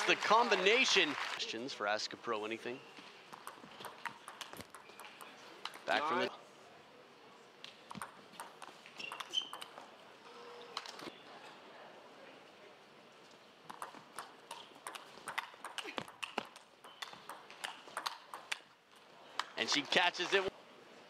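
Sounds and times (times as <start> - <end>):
table tennis ball clicking: 3.3 - 5.9, 7.9 - 9.8, 13.7 - 18.7.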